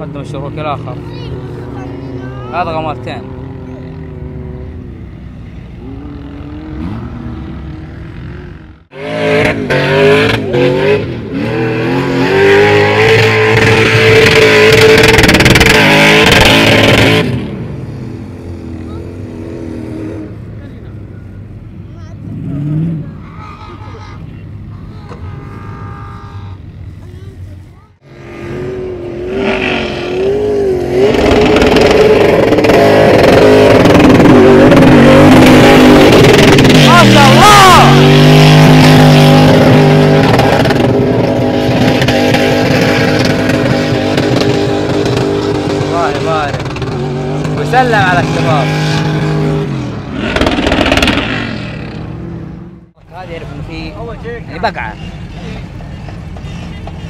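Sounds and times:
voices: 0:00.0 - 0:04.8, 0:20.4 - 0:28.0, 0:36.8 - 0:38.1, 0:53.0 - 0:57.0
engine at high revs: 0:00.0 - 0:20.7, 0:22.0 - 0:24.2, 0:27.9 - 0:57.0
quieter engine: 0:00.0 - 0:57.0.

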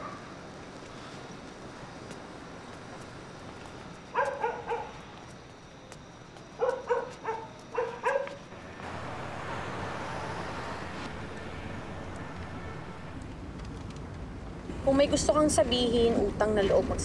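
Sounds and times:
street traffic: 0:00.4 - 0:15.6
dog barking: 0:04.2 - 0:05.0, 0:06.6 - 0:08.4.

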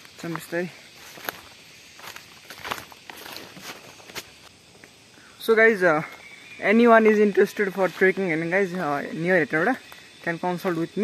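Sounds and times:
footsteps on leaf litter: 0:00.0 - 0:04.5, 0:07.7 - 0:09.0.

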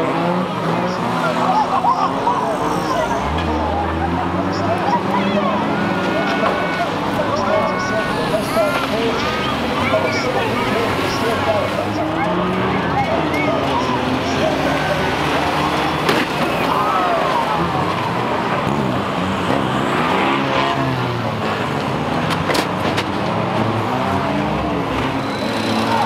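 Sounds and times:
racing car engines revving: 0:00.0 - 0:26.0.

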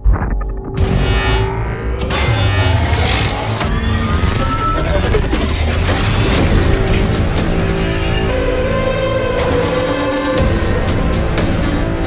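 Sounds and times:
cinematic music: 0:00.0 - 0:12.0.

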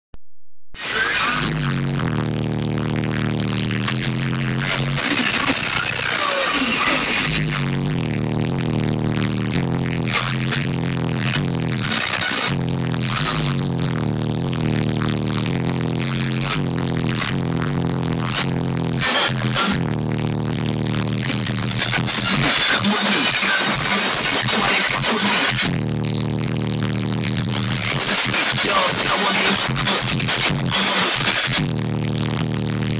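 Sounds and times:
electronic music with heavy bass: 0:00.8 - 0:32.9.

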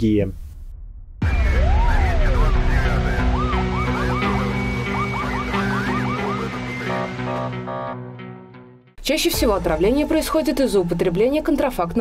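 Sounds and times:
yelping siren wail: 0:01.3 - 0:08.1.

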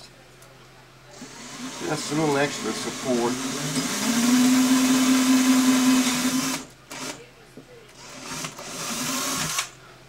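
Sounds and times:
cordless drill motor boring wood: 0:01.2 - 0:07.2, 0:08.0 - 0:09.7.

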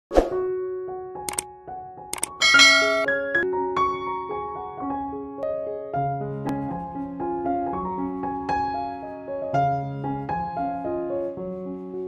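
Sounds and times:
quick clicks: 0:01.3 - 0:01.5, 0:02.1 - 0:02.4
rising chime notes: 0:02.4 - 0:03.4.

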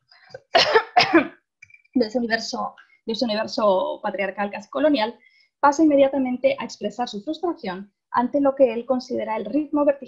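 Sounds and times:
woman coughing: 0:00.5 - 0:01.3.

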